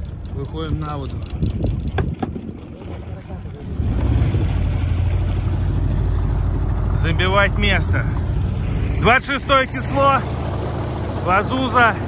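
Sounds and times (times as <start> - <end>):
outboard motor running: 0.0 - 12.0.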